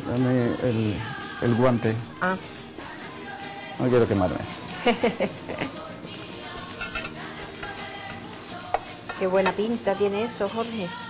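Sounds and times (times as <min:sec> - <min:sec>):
soft background music: 0:00.0 - 0:11.0
metal spoon clinking dishes: 0:06.5 - 0:09.8.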